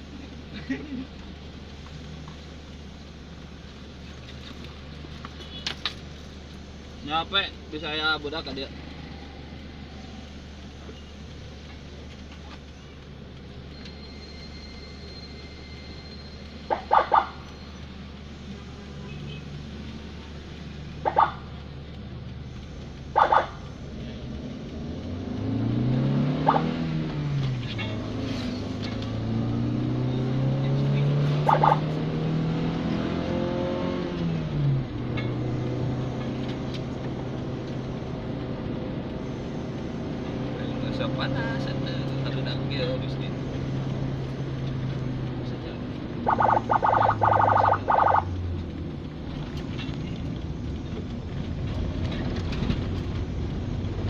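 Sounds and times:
engine idling and revving: 0.0 - 54.0
horn beeps: 31.4 - 31.9, 46.2 - 48.3.

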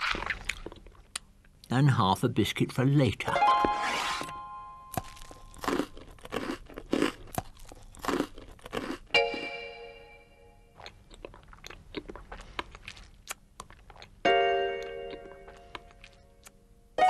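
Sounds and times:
food crunching and chewing: 0.0 - 1.6, 4.9 - 9.2, 10.7 - 14.2, 14.8 - 16.6.

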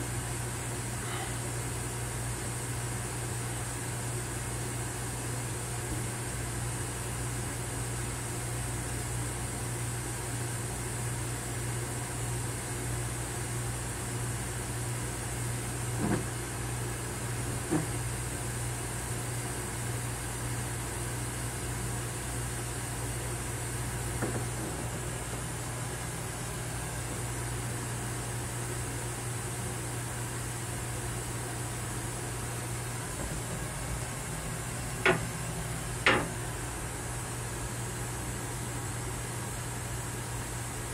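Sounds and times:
rail car hum and hiss: 0.0 - 40.9
short knocks: 35.0 - 36.4.

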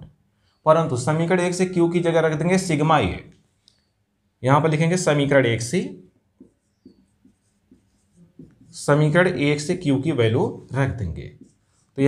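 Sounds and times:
man speaking: 4.4 - 6.1, 8.7 - 12.0
marker pen writing on whiteboard: 5.0 - 12.0.

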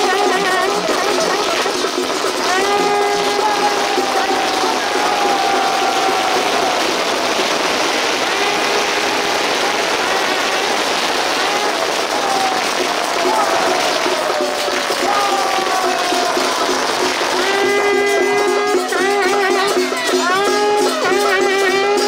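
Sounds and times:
crowd voices: 0.0 - 22.0
firework fountain hissing: 0.0 - 22.0.

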